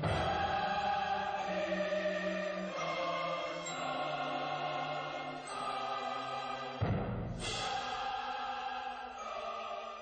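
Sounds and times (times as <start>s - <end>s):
choir singing held chords: 0.0s - 10.0s.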